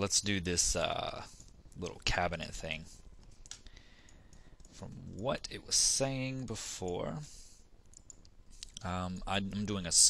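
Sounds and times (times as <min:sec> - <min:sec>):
man speaking: 0:00.0 - 0:03.0, 0:04.8 - 0:07.4, 0:08.8 - 0:10.0
faint mouse clicks: 0:03.2 - 0:04.8, 0:07.8 - 0:08.9.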